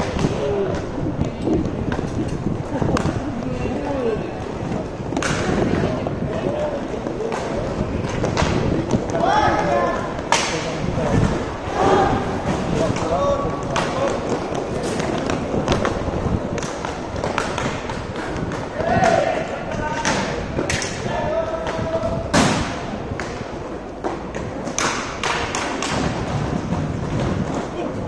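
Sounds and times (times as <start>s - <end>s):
hockey sticks knocking puck: 6.4s - 11.3s, 12.8s - 27.7s.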